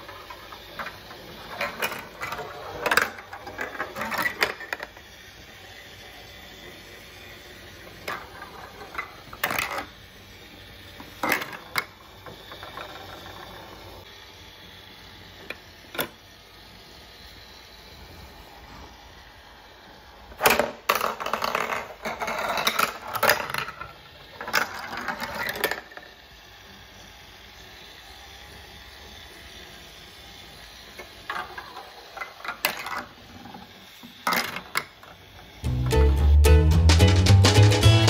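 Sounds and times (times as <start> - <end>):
marbles clattering through plastic track: 0.0 - 10.0, 10.9 - 14.0, 20.3 - 26.3, 30.9 - 35.6.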